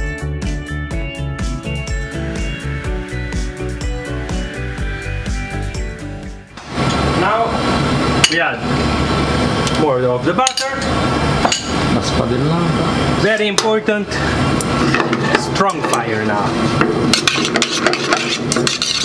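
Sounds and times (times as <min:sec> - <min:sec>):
background music with steady beat: 0:00.0 - 0:06.6.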